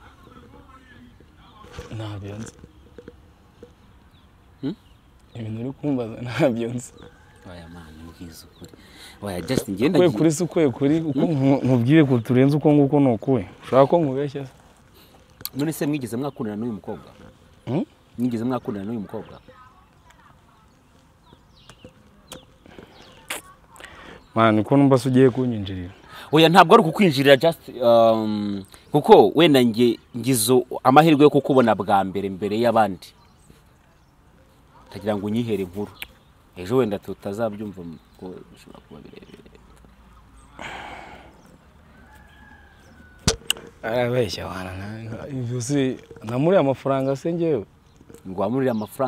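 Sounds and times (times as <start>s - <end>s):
faint outdoor background: 0.0s - 49.0s.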